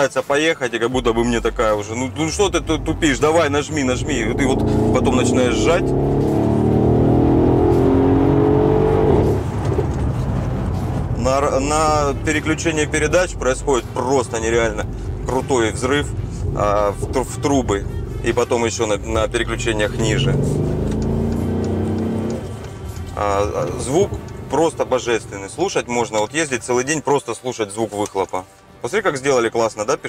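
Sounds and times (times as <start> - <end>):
rough exhaust rumble: 1.0 - 26.7
car engine accelerating hard: 1.4 - 26.3.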